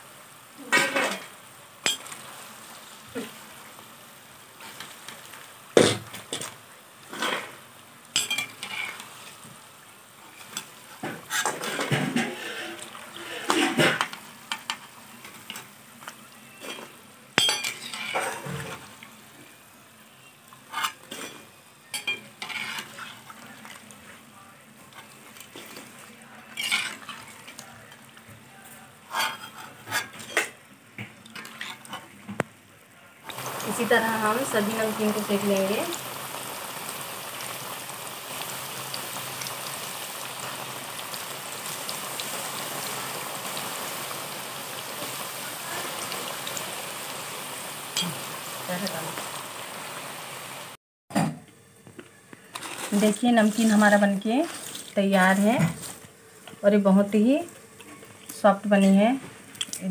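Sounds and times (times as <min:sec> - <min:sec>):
oil sizzling: 0:00.0 - 0:50.8, 0:51.8 - 0:59.9.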